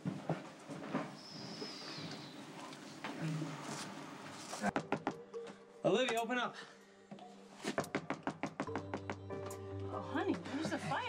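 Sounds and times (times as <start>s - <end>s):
soft background music: 2.2s - 11.0s.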